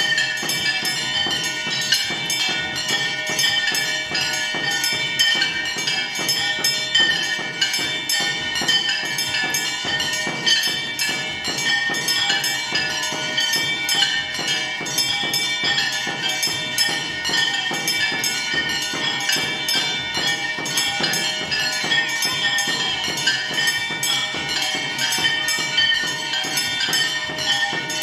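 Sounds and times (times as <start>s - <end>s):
clanging metal percussion: 0.0s - 28.0s
temple bells ringing: 0.0s - 28.0s.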